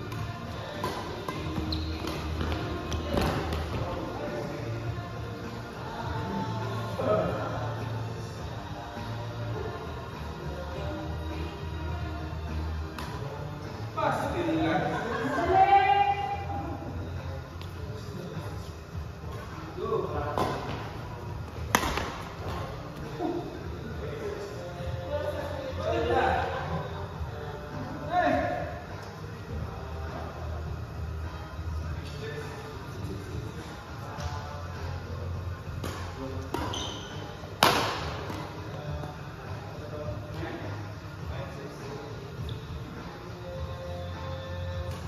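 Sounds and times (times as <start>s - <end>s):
background music: 0.0s - 45.0s
rackets hitting shuttlecock: 21.6s - 22.7s, 35.8s - 38.6s
racket hitting shuttlecock: 21.7s - 22.3s, 37.6s - 38.4s.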